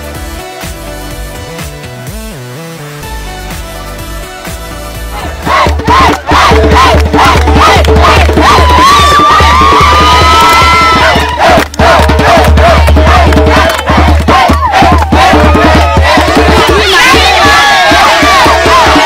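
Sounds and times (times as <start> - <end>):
music with heavy bass: 0.0 - 19.0
crowd shouting and yelling: 5.0 - 19.0.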